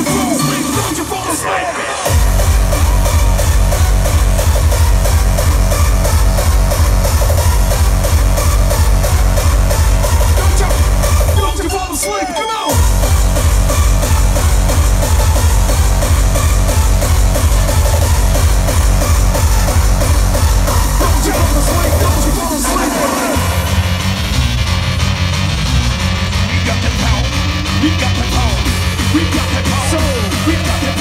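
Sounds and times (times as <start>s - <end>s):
hardcore dance music: 0.0s - 31.0s
pounding distorted kick drum: 2.1s - 11.8s, 12.7s - 31.0s.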